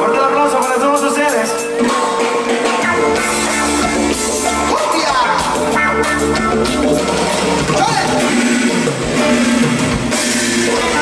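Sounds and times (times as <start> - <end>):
live band music led by guitar: 0.0 - 11.0.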